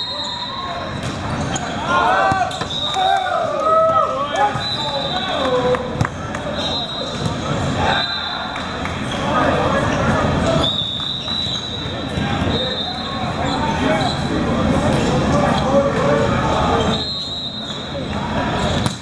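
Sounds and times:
players shouting: 0.0s - 10.7s.

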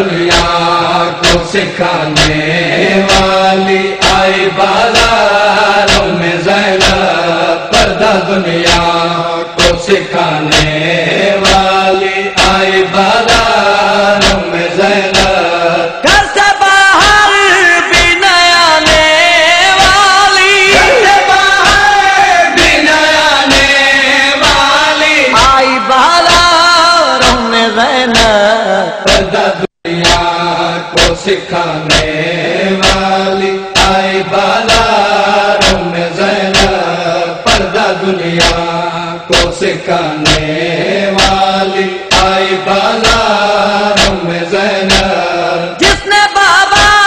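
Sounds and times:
men chanting a lament: 0.0s - 47.0s
sharp thump on the beat: 0.3s - 5.2s, 5.8s - 7.1s, 7.7s - 9.0s, 9.6s - 11.8s, 12.4s - 13.6s, 14.2s - 15.5s, 18.8s - 19.1s, 21.6s - 21.9s, 22.6s - 24.8s, 26.3s - 26.5s, 27.2s - 27.4s, 30.0s - 32.2s, 32.8s - 35.0s, 35.6s - 36.8s, 37.5s - 37.8s, 38.4s - 38.7s, 39.3s - 40.6s, 41.2s - 45.2s, 46.8s - 47.0s.

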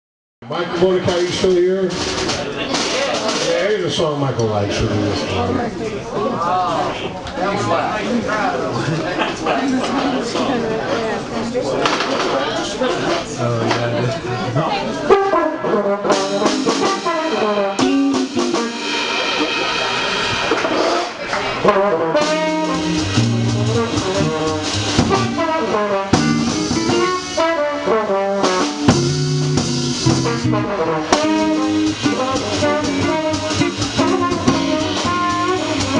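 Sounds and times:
drums: 0.4s - 35.9s
upright bass: 13.4s - 35.9s
trombone playing jazz melody: 15.0s - 35.9s
electric guitar: 16.1s - 35.9s.

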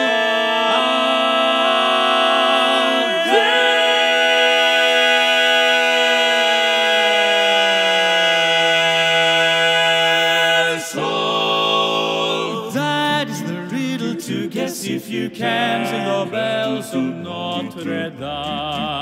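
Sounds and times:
male quartet singing chords: 0.0s - 19.0s.

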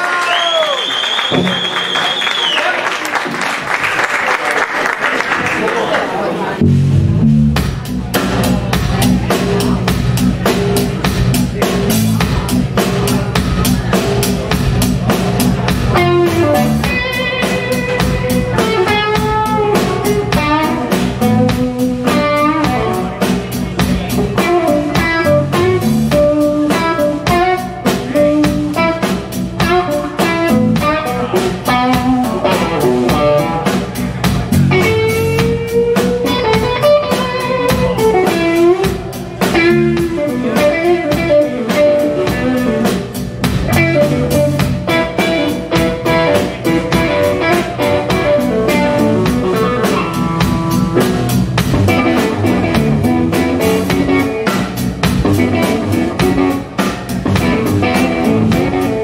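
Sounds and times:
lead electric guitar bending notes: 6.6s - 7.8s, 15.7s - 59.0s
drum kit steady beat: 6.6s - 59.0s
electric bass: 6.6s - 59.0s.

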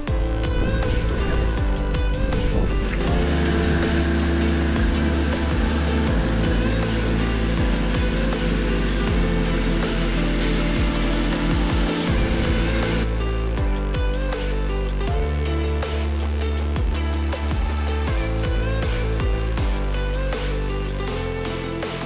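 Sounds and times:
music with low chords and beat: 0.0s - 22.0s.

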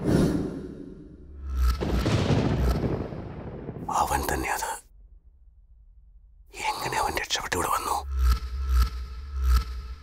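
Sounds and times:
man speaking: 3.9s - 4.8s, 6.5s - 8.1s.

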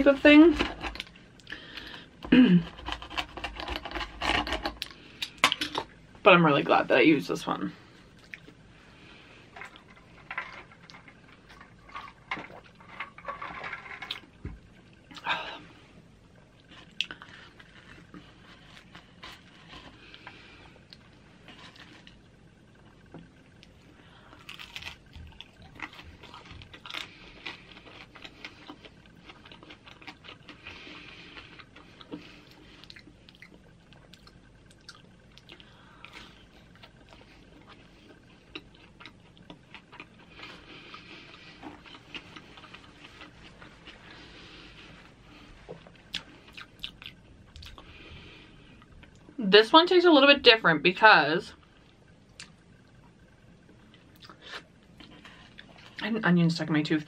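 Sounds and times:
chewing crisp flatbread: 2.6s - 5.4s, 16.4s - 23.0s, 23.6s - 48.0s.

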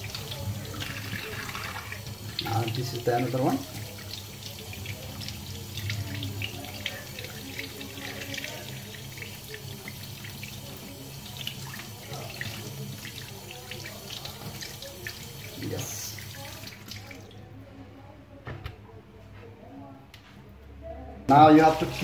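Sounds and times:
tap water running into sink: 0.0s - 17.3s, 21.3s - 22.0s.

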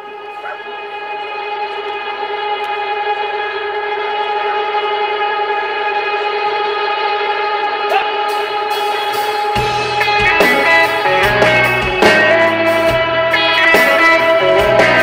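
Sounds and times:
rock band sustained chord: 0.0s - 15.0s.

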